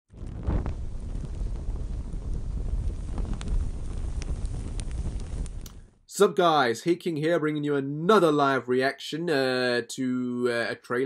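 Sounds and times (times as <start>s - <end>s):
low steady rumbling: 0.1s - 6.0s.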